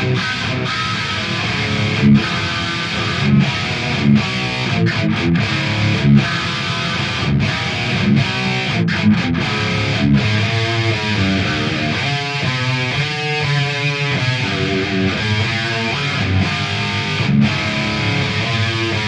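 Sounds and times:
distorted electric guitar riff: 0:00.0 - 0:19.0.

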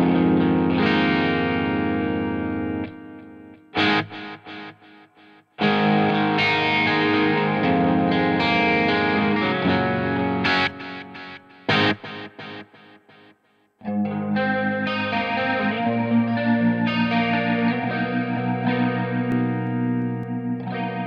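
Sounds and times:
electric guitar with delay: 0:00.0 - 0:21.0.

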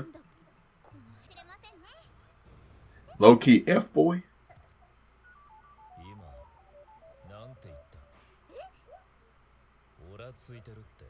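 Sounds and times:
descending electronic beeps: 0:05.2 - 0:08.4.

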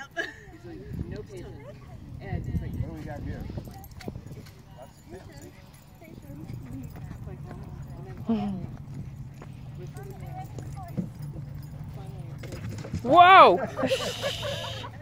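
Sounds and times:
distant people talking: 0:00.0 - 0:15.0.

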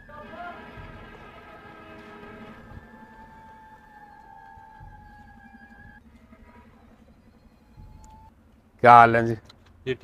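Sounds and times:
held synthesizer tones: 0:00.0 - 0:06.0
faint low rumble: 0:00.0 - 0:10.0.

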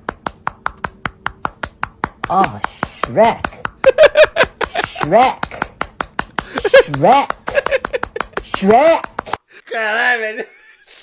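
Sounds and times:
rapid skin slapping: 0:00.0 - 0:09.4.

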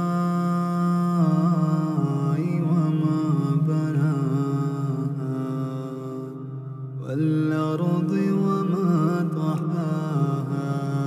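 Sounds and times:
man chanting recitation: 0:00.0 - 0:11.0.

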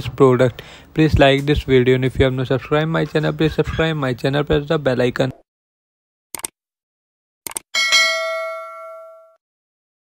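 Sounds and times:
notification bell ding: 0:07.8 - 0:09.4.

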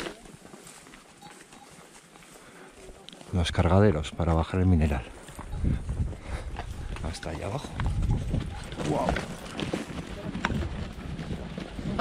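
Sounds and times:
horse hooves on dirt and stone: 0:00.0 - 0:12.0.

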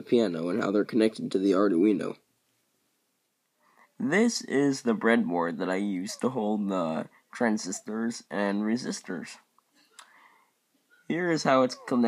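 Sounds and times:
person speaking: 0:03.9 - 0:09.5, 0:11.0 - 0:12.0.

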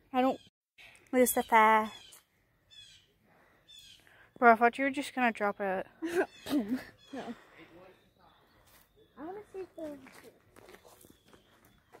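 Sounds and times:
footsteps crunching on gravel: 0:08.6 - 0:12.0.

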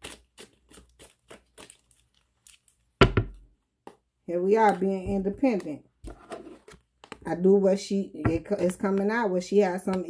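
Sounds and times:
loud thump: 0:03.0 - 0:03.4.

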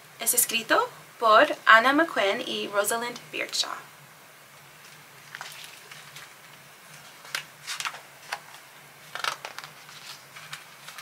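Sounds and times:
low steady hum: 0:00.0 - 0:11.0
book rustling and tapping: 0:06.9 - 0:11.0.

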